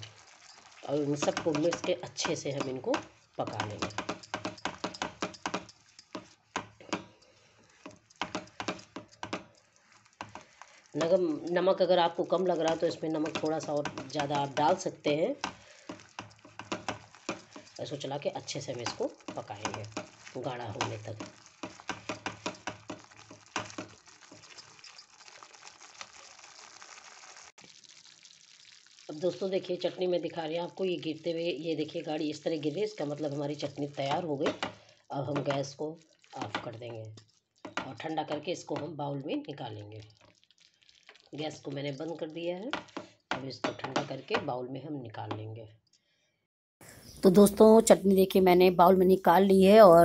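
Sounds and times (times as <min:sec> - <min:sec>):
thick chutney sputtering in a pan: 0:00.0 - 0:44.5.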